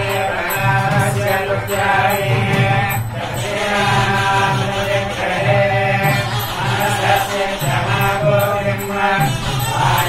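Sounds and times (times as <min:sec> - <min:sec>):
priests chanting: 0:00.0 - 0:10.0.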